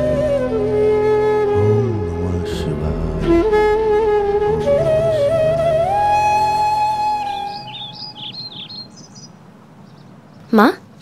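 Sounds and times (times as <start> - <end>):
background music: 0.0 - 7.9
bird chirping: 5.5 - 10.8.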